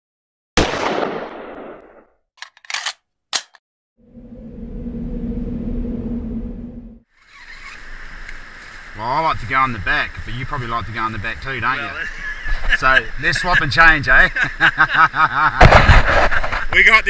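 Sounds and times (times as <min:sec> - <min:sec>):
low humming swell: 0:04.0 - 0:07.0
faint outdoor ambience: 0:04.0 - 0:17.0.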